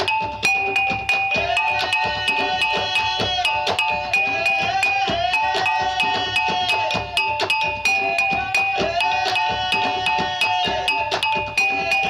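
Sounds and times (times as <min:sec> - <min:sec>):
tuned percussion struck rhythmically: 0:00.0 - 0:12.0.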